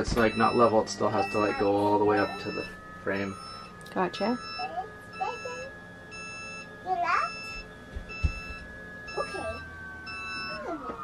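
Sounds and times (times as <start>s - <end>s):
high-pitched warning beep: 0.0s - 11.0s.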